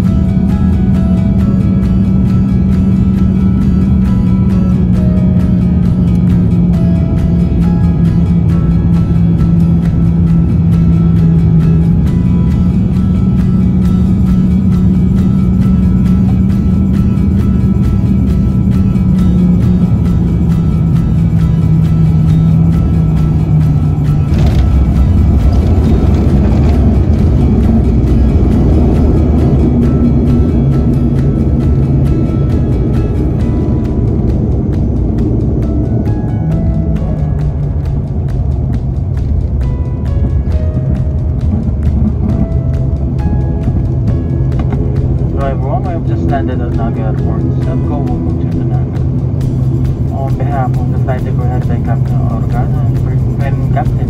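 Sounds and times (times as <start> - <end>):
aircraft touchdown rumble: 0.0 - 54.0
airliner engines droning: 0.0 - 54.0
background music: 0.0 - 54.0.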